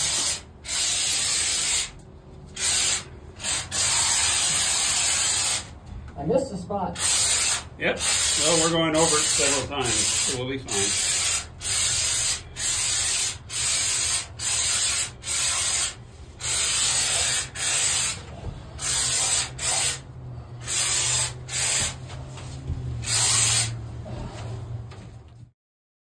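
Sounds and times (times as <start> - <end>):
spray foam gun hissing: 0.0 - 2.0, 2.6 - 5.7, 7.0 - 22.1, 23.0 - 23.8.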